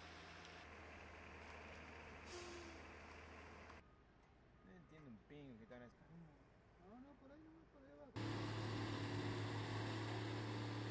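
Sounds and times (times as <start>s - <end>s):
road noise: 0.0s - 3.8s, 8.2s - 10.9s
low engine hum: 8.2s - 10.9s.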